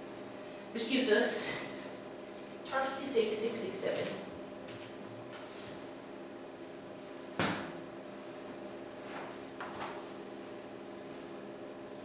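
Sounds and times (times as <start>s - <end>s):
low room hum: 0.0s - 12.0s
sharp knock: 7.4s - 7.8s.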